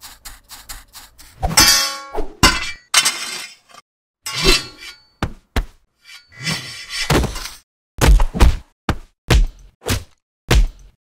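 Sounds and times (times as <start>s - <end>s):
metallic sword hits and scrapes: 1.4s - 5.1s, 6.0s - 7.6s.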